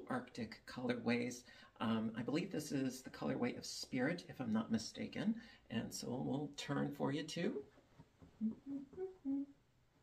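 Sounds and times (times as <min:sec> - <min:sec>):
man humming a tune: 0:08.4 - 0:09.6.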